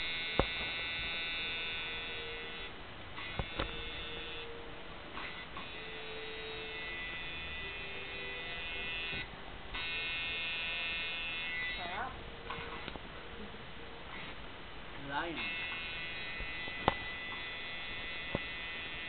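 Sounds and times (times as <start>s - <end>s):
tattoo machine buzzing: 0.0s - 13.0s, 15.0s - 19.0s.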